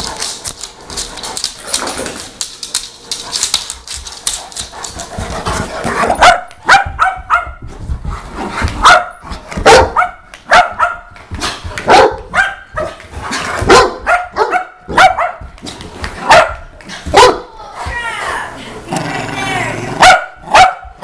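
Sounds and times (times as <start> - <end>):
dogs barking: 6.0 - 7.6, 8.8 - 11.2, 11.8 - 13.0, 13.6 - 15.6, 16.2 - 17.5, 20.0 - 21.0.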